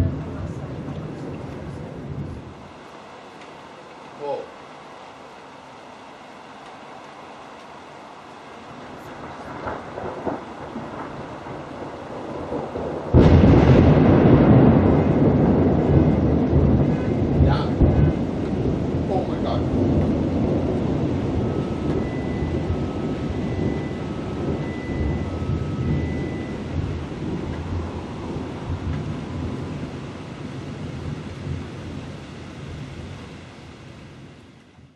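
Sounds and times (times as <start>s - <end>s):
thunder crack and rumble: 0.0s - 2.8s, 8.7s - 34.9s
car alarm two-tone beeping: 21.0s - 27.6s.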